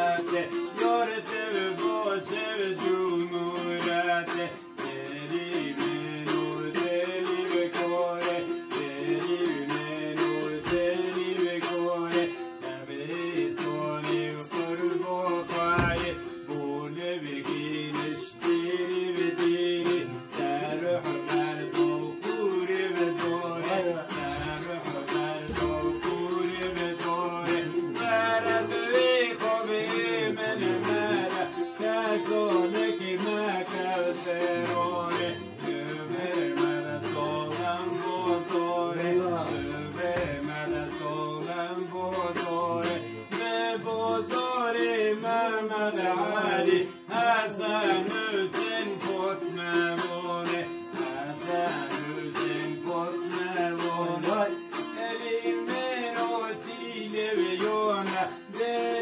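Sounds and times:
long-necked lutes strummed: 0.0 - 59.0.

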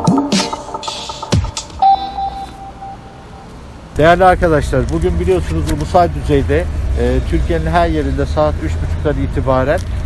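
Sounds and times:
high beep echoing: 0.0 - 3.5.

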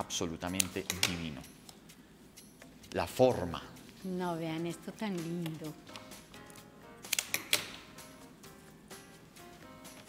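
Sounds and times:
soft background music: 0.0 - 10.0
flower stems clicking and snapping: 5.4 - 7.8.

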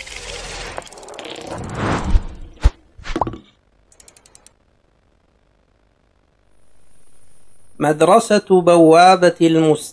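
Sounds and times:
rapid light high ticks: 3.9 - 4.6.

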